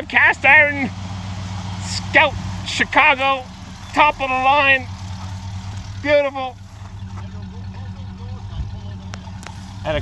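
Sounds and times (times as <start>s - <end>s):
engine idling low rumble: 0.0s - 10.0s
faint voices: 0.0s - 10.0s.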